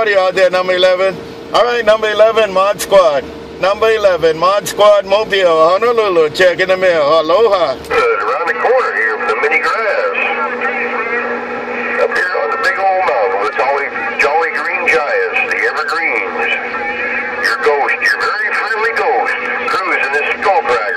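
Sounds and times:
distant radio voices overlapping: 0.0s - 20.9s
radio static crackles: 7.8s - 20.9s.

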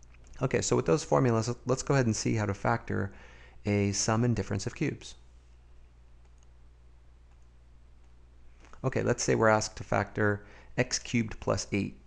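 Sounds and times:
low steady hum: 0.0s - 12.0s
faint computer clicks: 6.2s - 6.6s, 7.3s - 8.8s.

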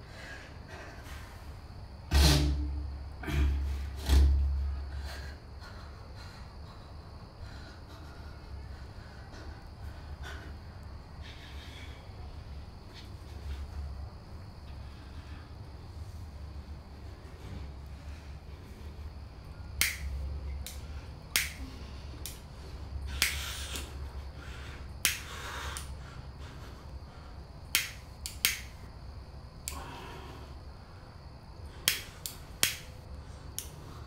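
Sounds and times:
steady low hum: 0.0s - 34.0s
short gas hiss: 2.1s - 2.8s
lighter flint wheel clicks: 27.7s - 28.8s.

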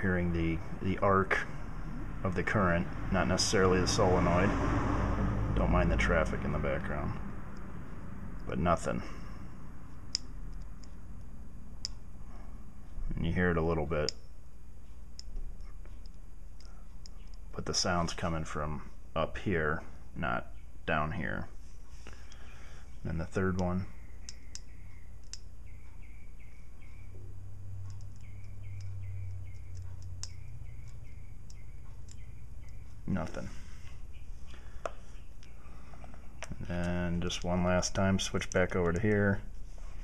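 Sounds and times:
steady low hum: 0.0s - 40.0s
faint sharp arcing ticks: 22.1s - 26.1s, 27.8s - 39.5s
faint ticks: 27.8s - 33.2s.

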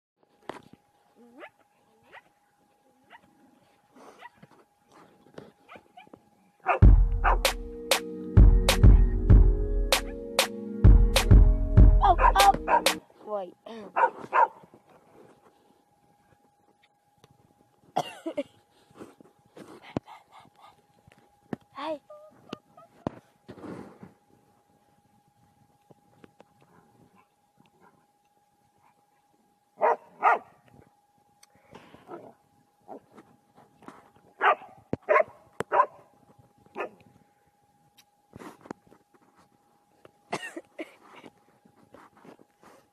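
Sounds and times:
dog barking: 5.7s - 7.4s, 12.2s - 13.0s, 13.9s - 14.6s, 29.8s - 30.6s, 34.4s - 36.1s, 36.8s - 37.0s.

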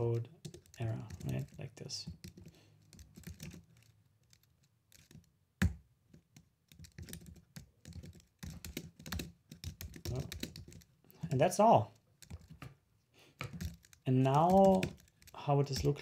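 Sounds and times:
computer keyboard typing: 0.4s - 5.8s, 6.4s - 11.6s, 12.2s - 12.7s, 13.4s - 16.0s.

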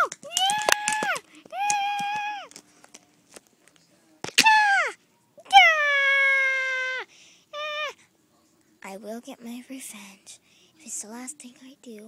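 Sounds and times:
child crying out high-pitched: 0.0s - 2.5s, 4.4s - 7.0s.

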